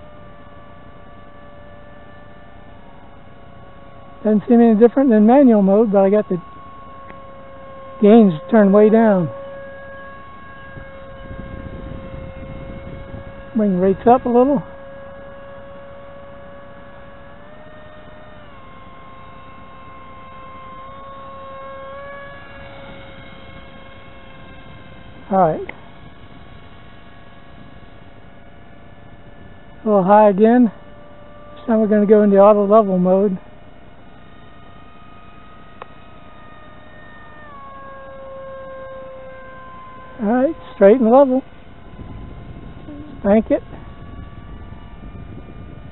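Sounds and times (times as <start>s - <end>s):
electric motor whining: 0.0s - 45.9s.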